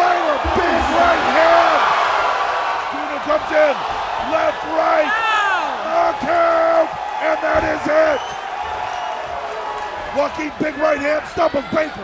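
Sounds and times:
fight crowd noise: 0:00.0 - 0:12.0
man shouting excitedly: 0:04.3 - 0:08.2.

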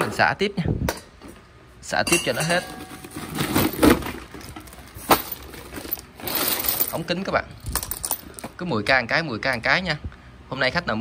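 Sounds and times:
small parts clattering in tub: 0:02.1 - 0:08.6
plastic sack rustling: 0:02.6 - 0:07.0.

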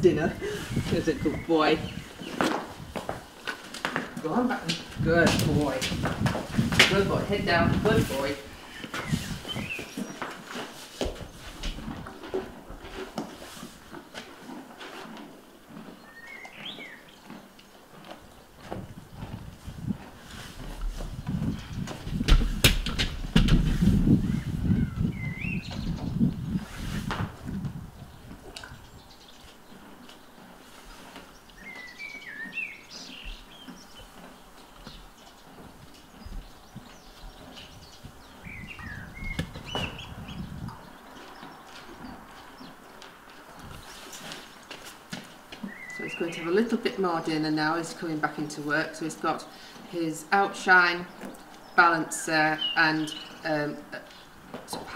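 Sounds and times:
small birds chirping: 0:00.0 - 0:05.9, 0:06.9 - 0:11.2, 0:13.8 - 0:19.6, 0:24.2 - 0:26.8, 0:27.9 - 0:54.9
horse chewing feed: 0:04.9 - 0:22.6, 0:26.2 - 0:50.1.

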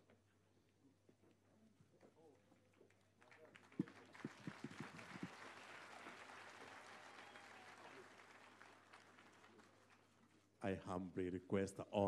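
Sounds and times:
audience applause: 0:03.2 - 0:10.0.

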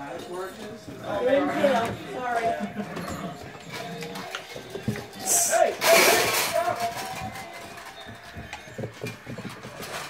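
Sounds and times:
puppies knocking and scraping on tile: 0:00.0 - 0:10.0.

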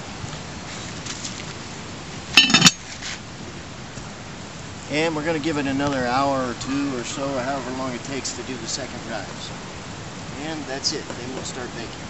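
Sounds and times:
metal lid clanking on pot: 0:02.4 - 0:02.8.

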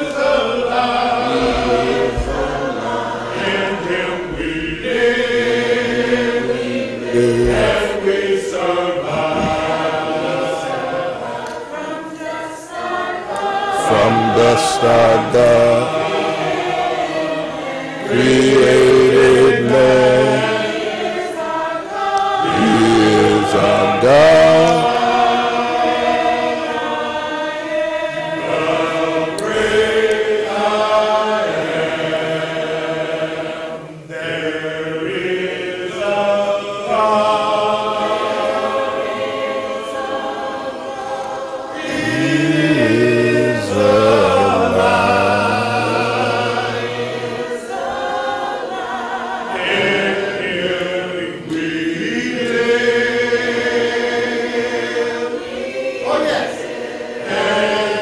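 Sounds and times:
congregation singing a hymn: 0:00.0 - 0:58.0.

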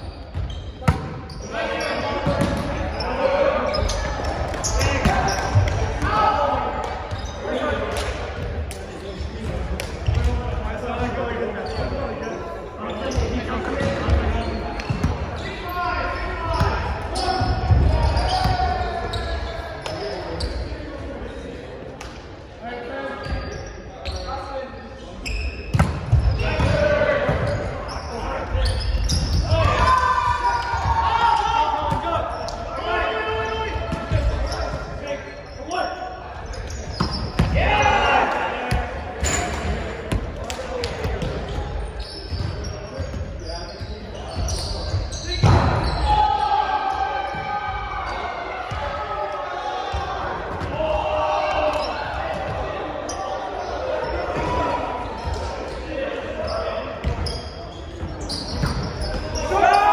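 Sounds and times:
players calling and talking: 0:00.0 - 0:59.9
volleyball slaps ringing in gym: 0:03.6 - 0:11.1, 0:25.5 - 0:27.8, 0:36.6 - 0:46.2.

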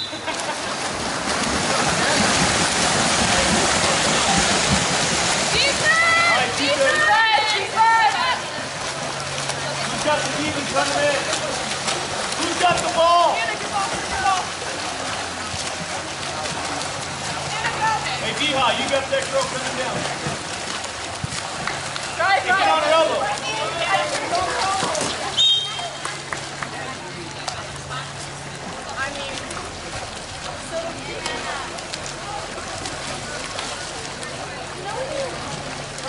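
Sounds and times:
water splashing from swimmers: 0:00.0 - 0:36.0.

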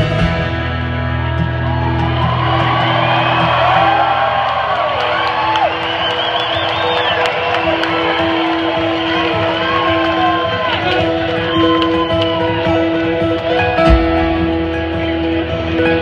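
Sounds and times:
crowd whooping and cheering: 0:00.6 - 0:16.0
acoustic guitar ringing: 0:05.6 - 0:16.0.

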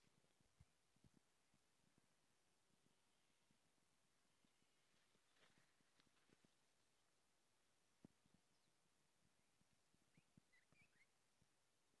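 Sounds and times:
faint short bird chirps: 0:10.1 - 0:11.2.

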